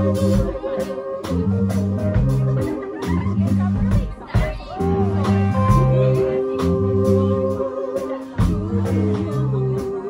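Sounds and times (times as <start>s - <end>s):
bass line: 0.0s - 10.0s
drum kit: 0.0s - 10.0s
electric guitar: 0.0s - 10.0s.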